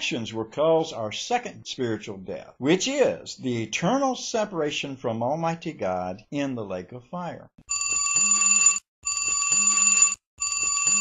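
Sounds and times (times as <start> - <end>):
telephone bell ringtone: 7.7 - 11.0.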